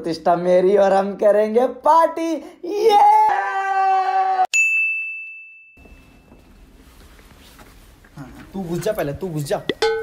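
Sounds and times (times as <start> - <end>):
bell-like ding: 4.5 - 6.4.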